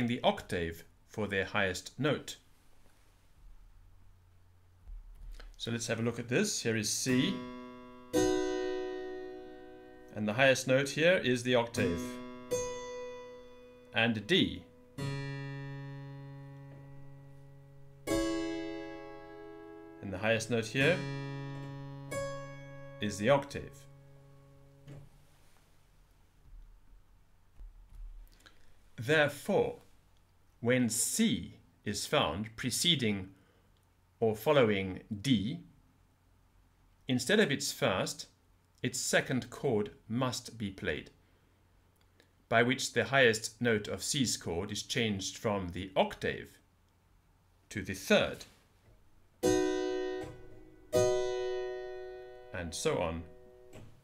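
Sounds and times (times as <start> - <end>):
plucked keyboard chord: 7.1 - 10.2, 11.7 - 25.0, 49.4 - 53.9.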